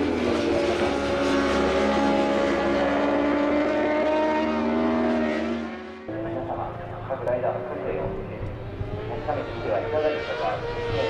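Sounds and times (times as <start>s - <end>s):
motorcycle engines at high revs: 0.0s - 11.0s.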